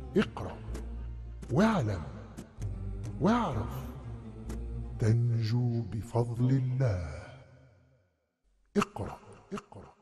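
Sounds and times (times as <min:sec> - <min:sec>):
man narrating with echo: 0:00.1 - 0:00.7, 0:01.5 - 0:02.4, 0:05.0 - 0:07.5, 0:08.8 - 0:10.0.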